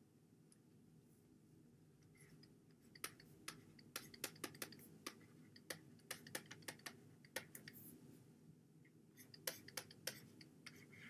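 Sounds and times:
low room hum: 0.0s - 11.0s
stylus tapping on pen tablet: 2.8s - 7.8s, 9.2s - 10.8s.

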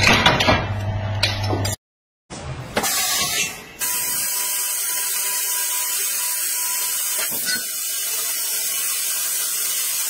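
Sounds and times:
laser cutter high hiss: 2.9s - 10.0s.

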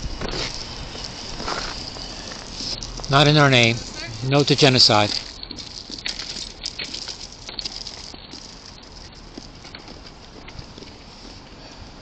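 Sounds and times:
street noise hiss: 0.0s - 12.0s.

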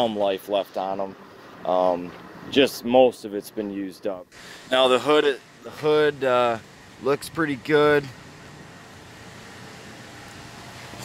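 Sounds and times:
even outdoor hiss: 0.0s - 11.0s.

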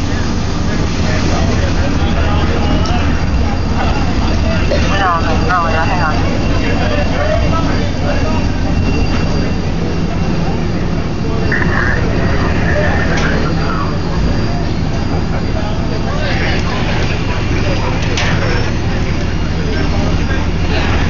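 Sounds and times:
diesel engine running: 0.0s - 21.0s
firefighters' voices: 0.0s - 21.0s.

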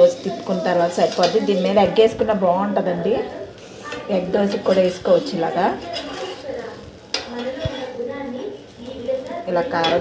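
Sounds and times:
food sizzling on hot griddle: 0.0s - 10.0s.

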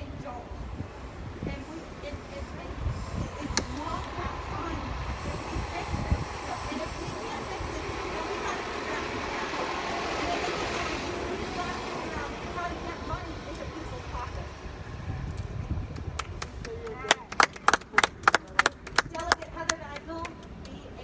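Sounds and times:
vehicle passing: 0.0s - 18.9s.

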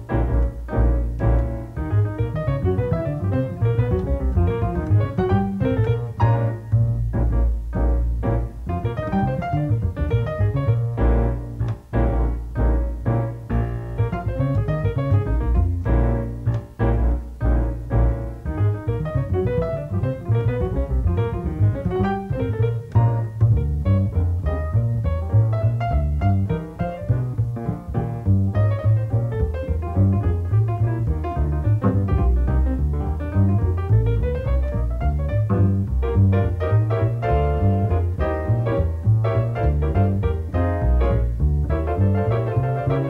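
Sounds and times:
solo jazz piano: 0.0s - 43.0s.

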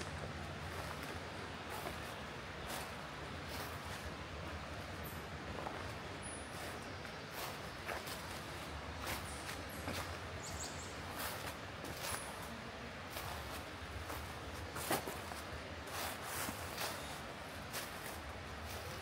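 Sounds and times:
low steady hum: 0.0s - 19.0s
footsteps crunching through dry leaves: 0.3s - 4.6s, 5.5s - 19.0s.

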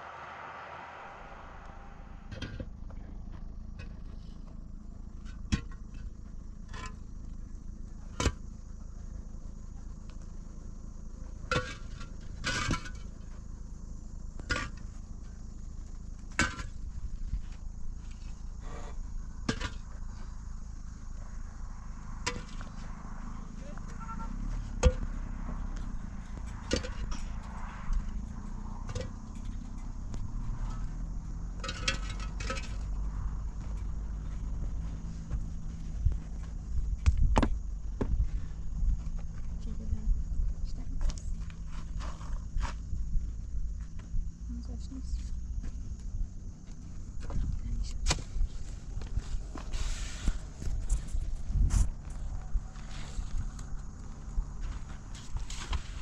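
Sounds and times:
low steady background noise: 0.0s - 56.0s.

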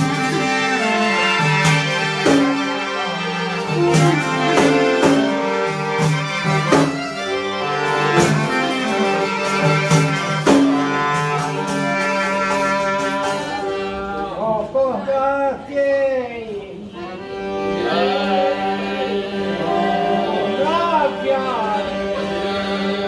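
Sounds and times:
clarinet melody: 0.0s - 14.4s
accordion: 0.0s - 15.1s, 16.8s - 23.0s
frame drum strikes: 9.6s - 12.0s.

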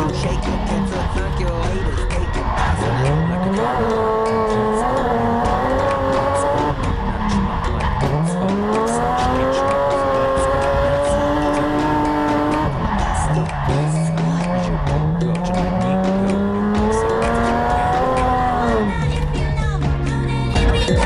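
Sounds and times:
tyres squealing: 0.0s - 19.3s
car engine revving: 0.0s - 21.0s.

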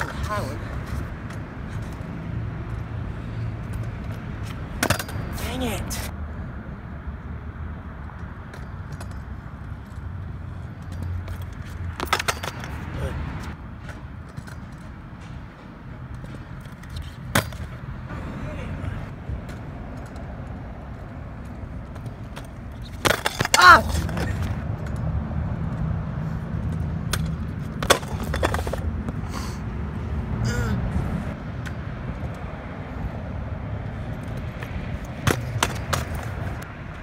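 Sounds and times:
scooter wheels rumbling on concrete: 0.0s - 6.2s, 8.1s - 37.0s
scooter clacking on concrete: 3.6s - 6.0s, 10.6s - 12.8s, 21.0s - 25.9s, 26.6s - 29.2s, 34.2s - 37.0s.

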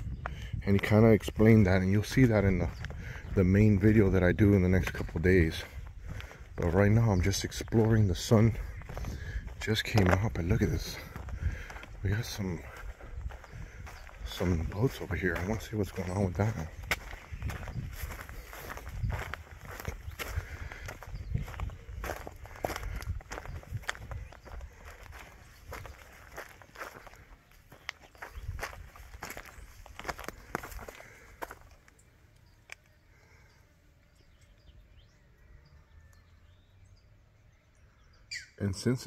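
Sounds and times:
footsteps on rocky ground: 0.0s - 32.1s
faint outdoor background: 0.0s - 39.0s.

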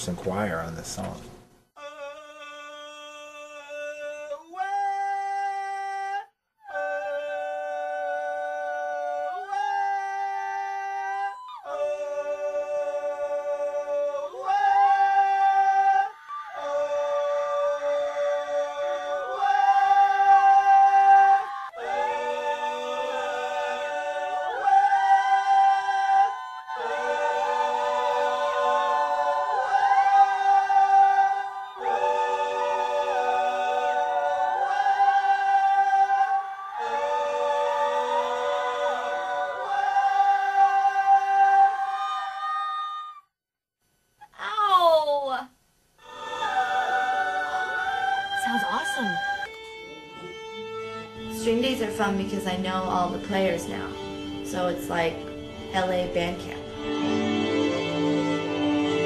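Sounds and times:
female vocals in harmony: 46.0s - 49.5s
female vocals sustained chord: 48.0s - 49.5s, 51.4s - 56.7s.

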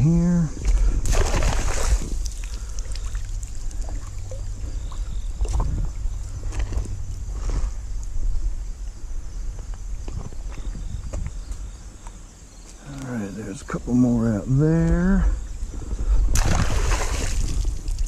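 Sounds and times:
steady low rumble: 0.0s - 12.6s
small splashes and knocks: 0.6s - 4.5s, 5.4s - 5.9s, 16.3s - 18.0s.

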